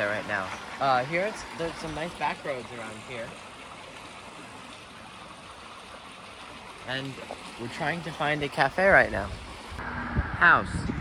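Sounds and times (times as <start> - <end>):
stream running over stones: 0.0 - 9.8.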